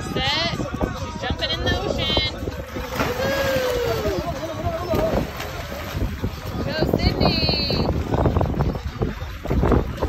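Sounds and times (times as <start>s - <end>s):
wind rumble on microphone: 0.0s - 10.0s
splash into water: 2.7s - 4.2s.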